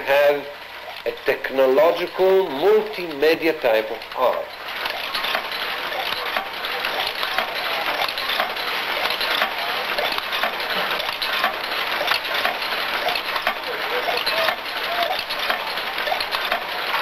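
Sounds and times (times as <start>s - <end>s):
bottle-filling machinery clattering: 0.0s - 17.0s.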